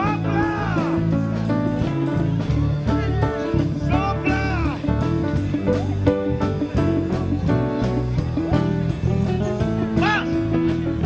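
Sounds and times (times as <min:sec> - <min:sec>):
bass notes: 0:00.0 - 0:11.0
drums and congas: 0:00.0 - 0:11.0
electric guitar: 0:00.0 - 0:11.0.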